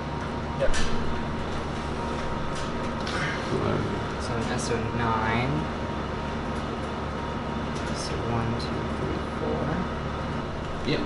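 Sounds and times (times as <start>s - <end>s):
electronic equipment fans humming: 0.0s - 11.0s.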